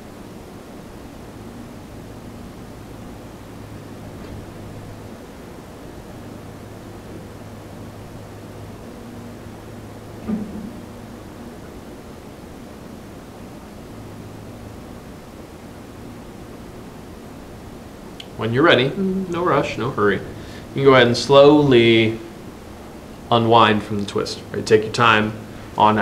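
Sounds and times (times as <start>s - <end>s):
low hum: 0.0s - 26.0s.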